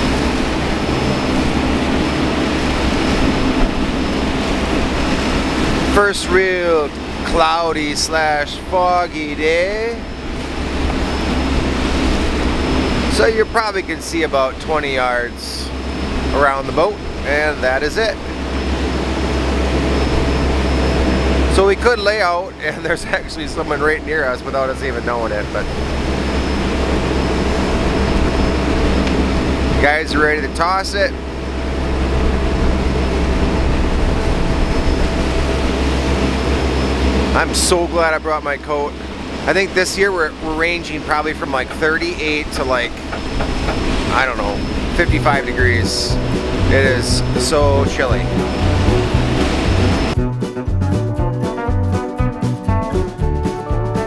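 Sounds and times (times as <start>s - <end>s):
wind rushing: 0.0s - 6.0s, 25.6s - 30.0s, 31.0s - 37.4s, 41.9s - 50.3s
churning water: 0.0s - 51.8s
boat engine droning: 0.0s - 54.0s.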